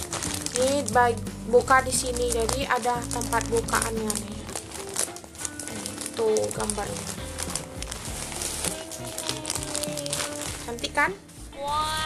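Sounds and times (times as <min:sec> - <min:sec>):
plastic packaging crinkling: 0:00.0 - 0:11.3
background music: 0:00.0 - 0:12.0.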